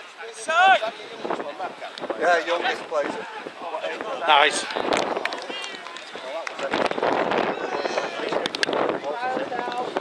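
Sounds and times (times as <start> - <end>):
spectators shouting: 2.6 - 8.5.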